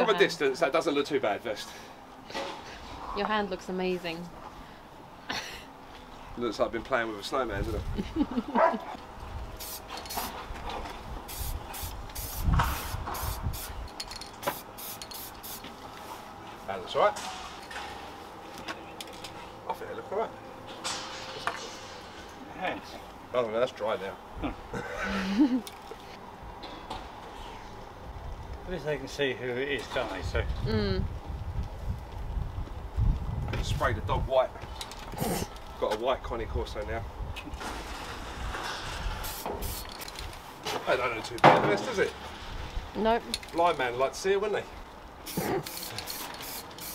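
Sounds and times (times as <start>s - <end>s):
low outdoor rumble: 0.0s - 45.3s
spray can hissing: 9.6s - 10.4s, 11.3s - 13.8s, 14.4s - 15.7s, 39.2s - 40.0s, 45.2s - 46.9s.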